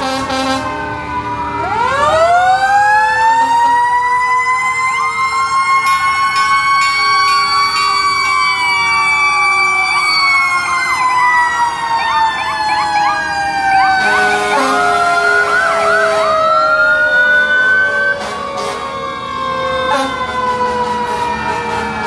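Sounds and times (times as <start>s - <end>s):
emergency vehicle sirens wailing: 0.0s - 22.0s
siren whoops: 0.3s - 22.0s.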